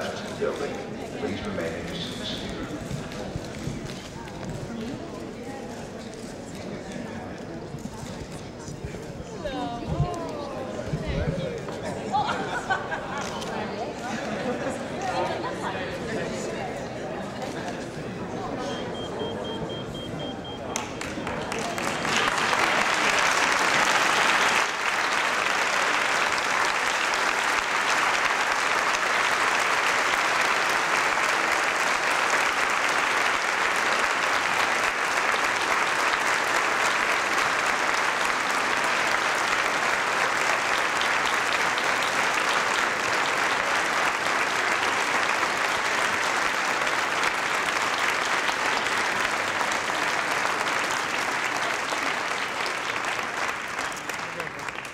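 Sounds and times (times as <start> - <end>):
audience applauding: 0.0 - 5.1, 18.7 - 54.9.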